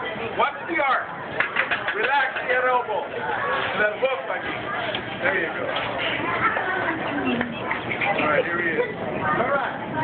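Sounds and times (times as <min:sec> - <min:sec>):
people talking outdoors: 0:00.0 - 0:10.0.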